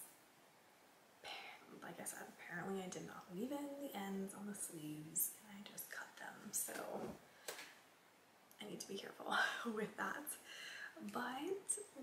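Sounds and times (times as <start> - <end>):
soft intake of breath: 10.4 - 11.0.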